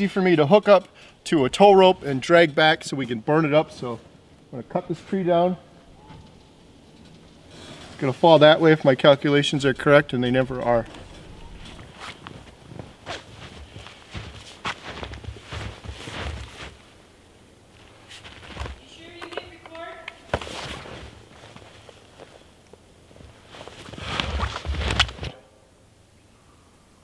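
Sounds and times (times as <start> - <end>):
footsteps crunching through snow: 9.7 - 17.1, 17.7 - 19.2, 20.3 - 25.3.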